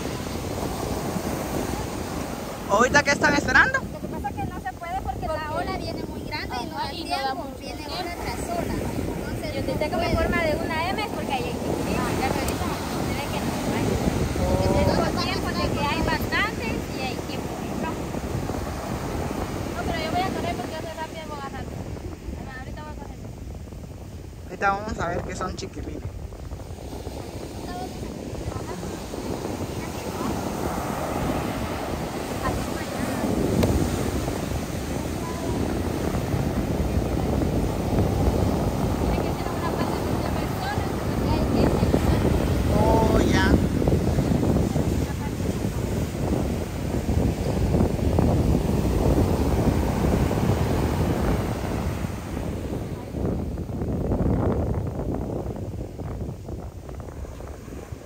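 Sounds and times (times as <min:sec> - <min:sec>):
heavy surf breaking on shore: 0:00.0 - 0:58.0
wind buffeting microphone: 0:00.0 - 0:58.0.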